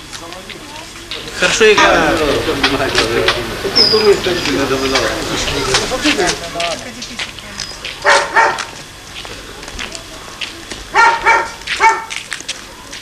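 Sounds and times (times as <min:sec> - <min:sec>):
dog barking: 0:08.0 - 0:08.7, 0:10.9 - 0:12.2.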